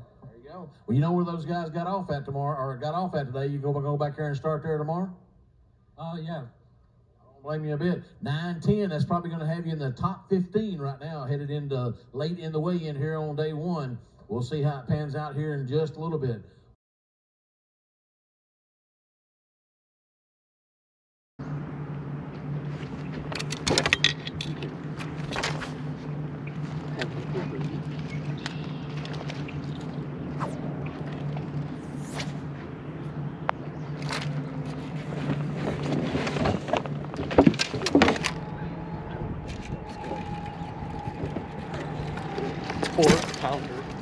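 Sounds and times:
boat motor humming: 0:21.4 - 0:44.0
footsteps on boat deck: 0:22.2 - 0:44.0
fishing gear knocks and clicks: 0:22.8 - 0:29.8, 0:34.0 - 0:38.5.

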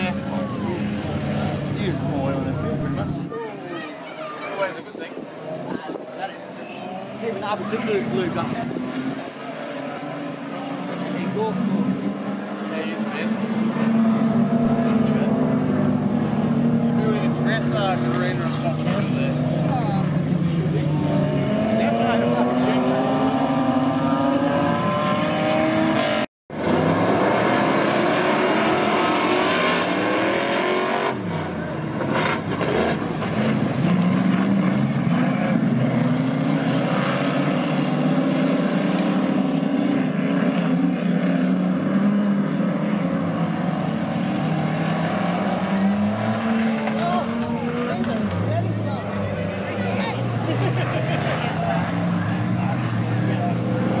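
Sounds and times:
race car engines revving: 0:00.0 - 0:54.0.

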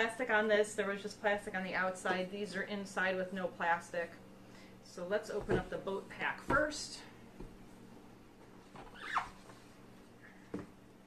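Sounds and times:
cardboard squeak: 0:08.8 - 0:09.5.

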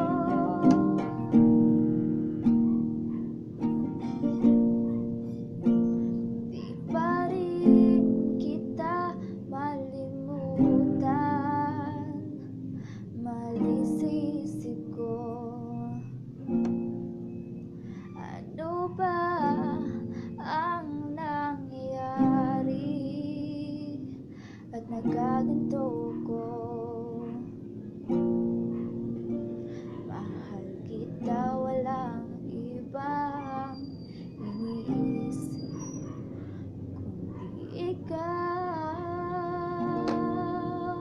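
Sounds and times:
woman singing: 0:00.0 - 0:01.6, 0:06.5 - 0:16.2, 0:18.2 - 0:27.6, 0:30.0 - 0:36.0, 0:37.5 - 0:41.0
acoustic guitar chords: 0:00.0 - 0:33.6.

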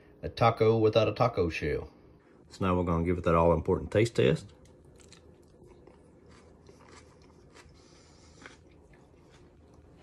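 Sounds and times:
faint chewing: 0:04.4 - 0:10.0.

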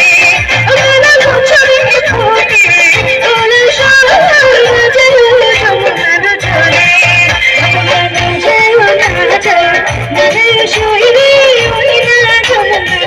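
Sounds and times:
live band with keyboard: 0:00.0 - 0:13.0
woman singing into a microphone: 0:00.0 - 0:13.0.

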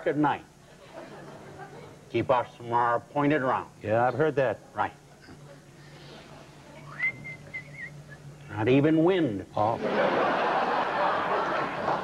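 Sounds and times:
person whistling: 0:06.9 - 0:08.4.

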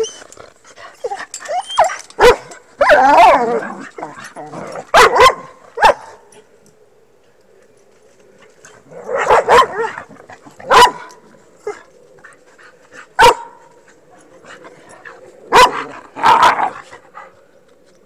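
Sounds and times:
dog barking: 0:02.2 - 0:02.5, 0:04.9 - 0:06.2, 0:09.2 - 0:09.9, 0:10.7 - 0:11.1, 0:13.2 - 0:13.6, 0:15.5 - 0:15.9.

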